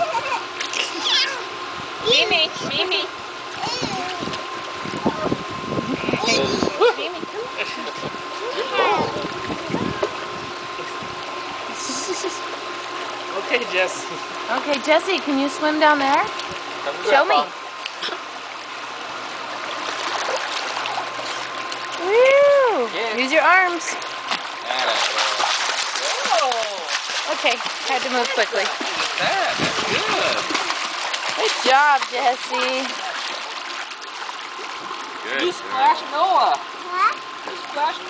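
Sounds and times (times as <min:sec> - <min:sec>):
water splashing in a pool: 0:00.0 - 0:01.6, 0:07.3 - 0:15.0, 0:15.9 - 0:38.0
pool pump hum: 0:00.0 - 0:38.0.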